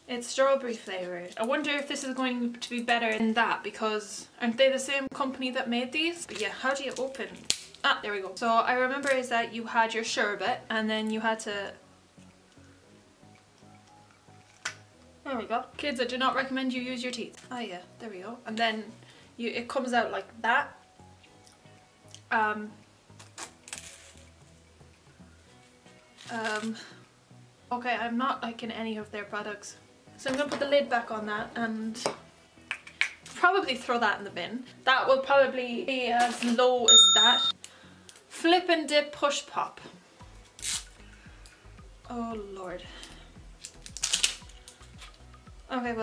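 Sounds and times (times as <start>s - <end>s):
faint background music: 0.0s - 46.0s
plastic wrapper crinkling: 23.1s - 24.5s, 26.1s - 26.9s, 43.6s - 45.2s.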